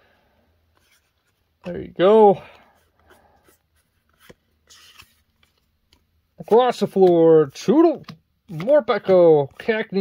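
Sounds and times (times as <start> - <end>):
cards rustling: 0.7 - 10.0.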